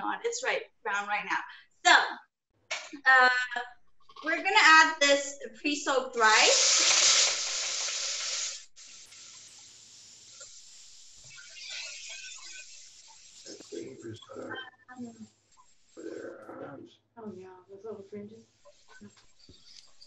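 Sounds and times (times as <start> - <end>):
rice sizzling in butter: 6.1 - 14.1
person speaking: 13.4 - 15.3.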